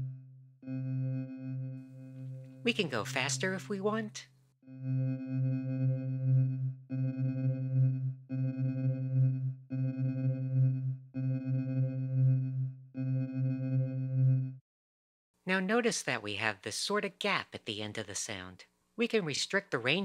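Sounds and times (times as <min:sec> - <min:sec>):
synthesizer low note sweeping: 0:00.0 - 0:03.5, 0:04.6 - 0:14.6.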